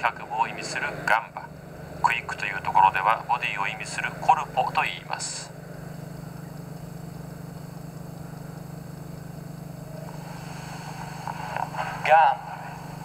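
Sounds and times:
low hum with hiss: 0:00.0 - 0:13.0.

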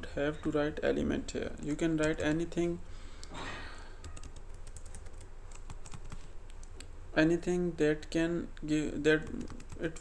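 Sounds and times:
steady low hum: 0:00.0 - 0:10.0
typing on computer keyboard: 0:04.0 - 0:06.2, 0:09.2 - 0:10.0.

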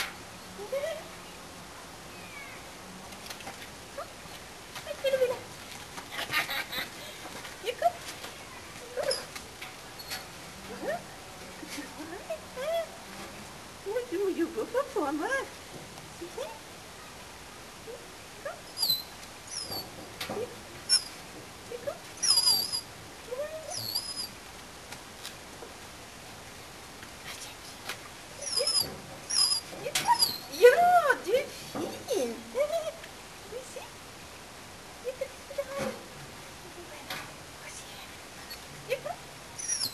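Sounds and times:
dog whining: 0:08.9 - 0:09.4, 0:22.2 - 0:22.8, 0:23.6 - 0:24.3, 0:28.4 - 0:30.6, 0:39.6 - 0:39.9.

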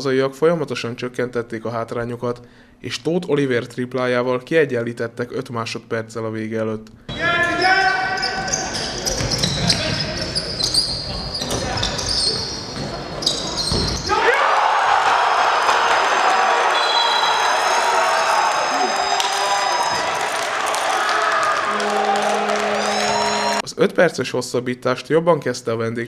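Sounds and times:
sneakers squeaking: 0:07.1 - 0:14.2
basketball bouncing on court: 0:08.2 - 0:14.1
crowd cheering: 0:14.1 - 0:23.6.

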